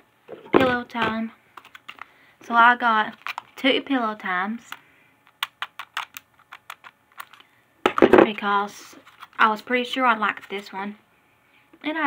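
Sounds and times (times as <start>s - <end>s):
plastic packs clicking: 1.6s - 2.1s, 3.1s - 3.6s, 4.7s - 8.0s.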